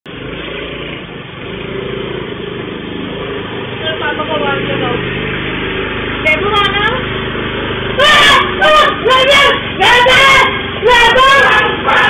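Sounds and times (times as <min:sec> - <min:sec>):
scooter engine running: 0:00.1 - 0:12.0.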